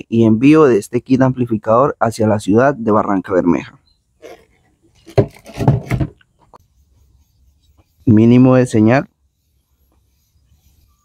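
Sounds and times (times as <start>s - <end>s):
device scraping against cardboard box: 4.2s - 6.2s.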